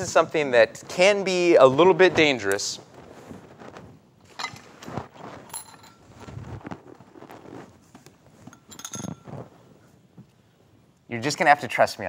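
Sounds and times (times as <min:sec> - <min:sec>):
glass clink: 0:08.5 - 0:09.3.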